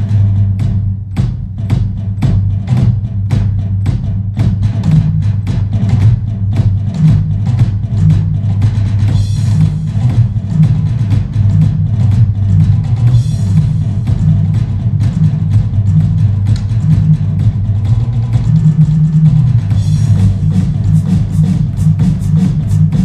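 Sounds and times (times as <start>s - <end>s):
drum kit played fast: 0.0s - 23.0s
low bass backing track: 0.0s - 23.0s.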